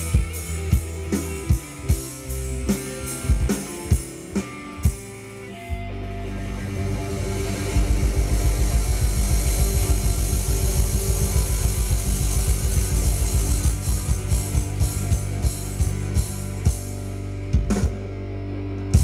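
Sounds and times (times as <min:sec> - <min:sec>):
rock band playing: 0:00.0 - 0:19.0
held low chord: 0:01.7 - 0:19.0
rapid low pulse: 0:05.9 - 0:19.0
drum hits: 0:07.0 - 0:18.0.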